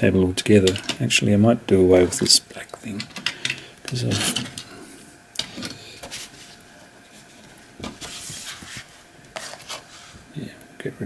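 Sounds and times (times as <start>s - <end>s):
sheet rubbing rustle: 6.1s - 10.3s.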